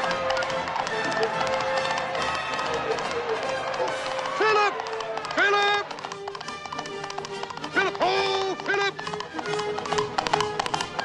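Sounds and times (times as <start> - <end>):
orchestral film score: 0.0 - 11.0.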